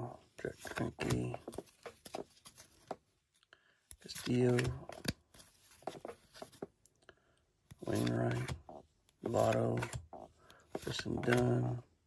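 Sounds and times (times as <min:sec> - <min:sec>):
cards sliding against each other: 0:00.5 - 0:03.0, 0:03.9 - 0:06.8, 0:07.7 - 0:11.8.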